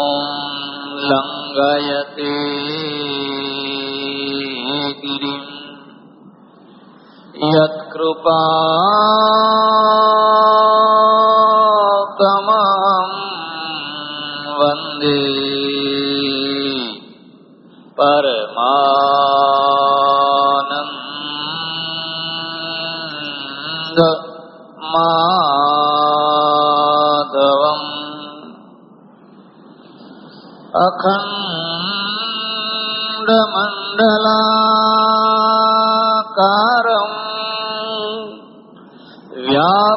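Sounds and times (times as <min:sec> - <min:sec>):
devotional chanting: 0:00.0 - 0:39.9.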